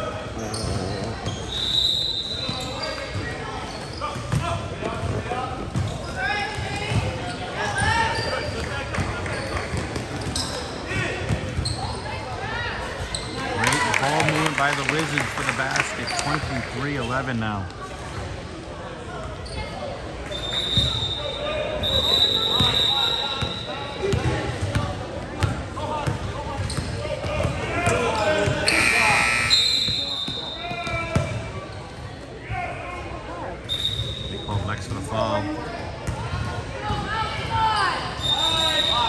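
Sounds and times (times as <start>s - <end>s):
voices echoing in a gym: 0.0s - 39.0s.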